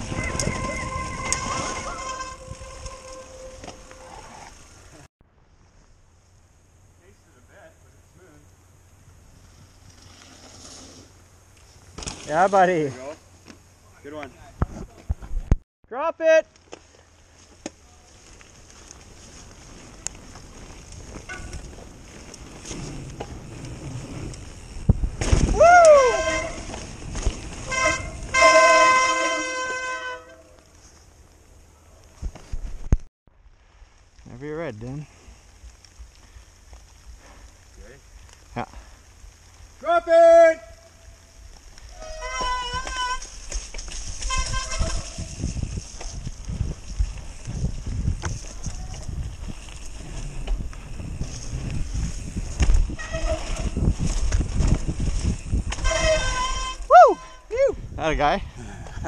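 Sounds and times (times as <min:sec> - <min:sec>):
wind rush on microphone: 0:00.0 - 0:03.2, 0:44.0 - 0:56.9, 0:57.5 - 0:59.0
bike rolling rumble: 0:00.0 - 0:15.6, 0:16.5 - 0:39.8, 0:40.7 - 0:59.0
riders whooping and hollering: 0:25.5 - 0:26.7, 0:55.8 - 0:57.9.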